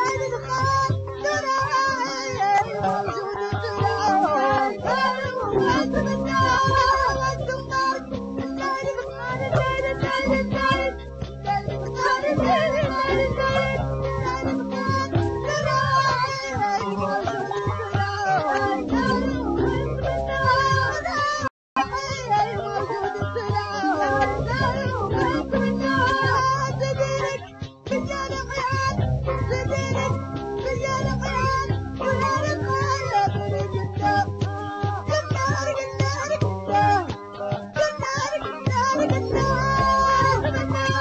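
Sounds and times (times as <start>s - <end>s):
instrumental accompaniment: 0.0s - 41.0s
woman singing into a microphone: 0.0s - 41.0s.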